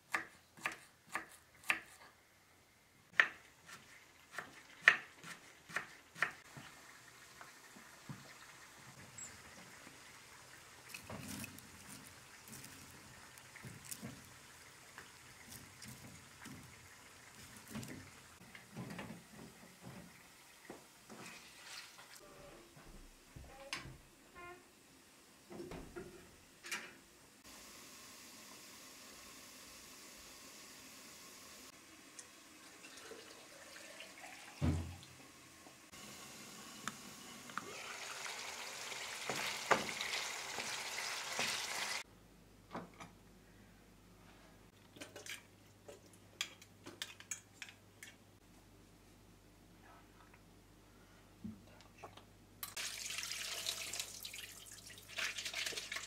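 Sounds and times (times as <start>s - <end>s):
food sizzling in a pan: 3.3s - 18.4s, 27.4s - 42.1s, 52.7s - 56.0s.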